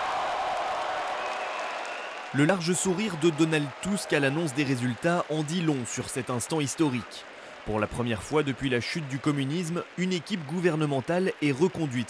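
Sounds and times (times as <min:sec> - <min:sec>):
crowd cheering: 0:00.0 - 0:12.0
crowd clapping: 0:00.0 - 0:12.0.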